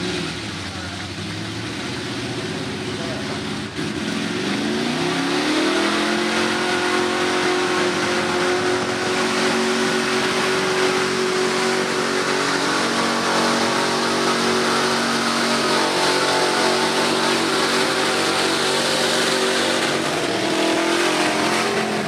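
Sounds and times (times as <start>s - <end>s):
truck engine revving hard: 0.0s - 22.0s.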